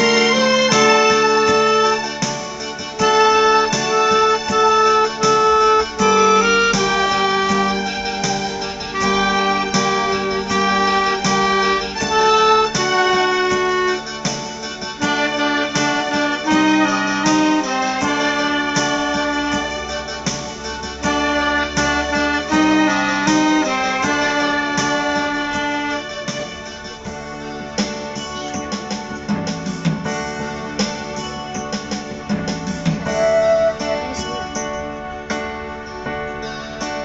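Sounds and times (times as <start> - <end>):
clarinet melody: 0.0 - 28.7, 32.9 - 36.8
electronic keyboard chords: 0.0 - 37.0.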